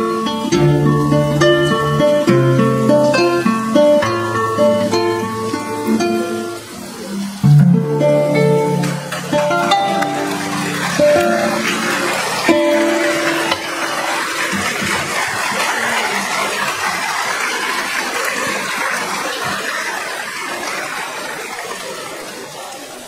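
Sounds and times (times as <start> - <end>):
plucked harp notes: 0.0 - 14.7
audience applause: 0.0 - 23.0.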